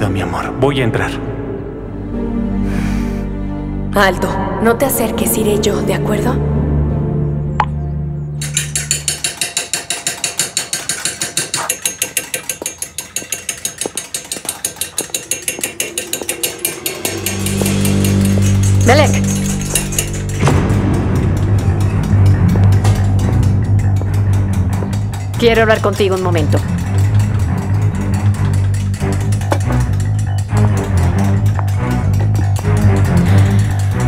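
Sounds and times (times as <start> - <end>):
low background music: 0.0 - 9.9, 14.3 - 34.0
hand tools tapping on copper: 8.4 - 34.0.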